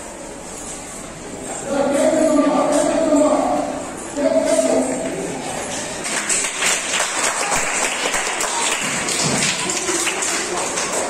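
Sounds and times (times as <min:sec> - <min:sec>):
group of people clapping: 0:05.9 - 0:11.0.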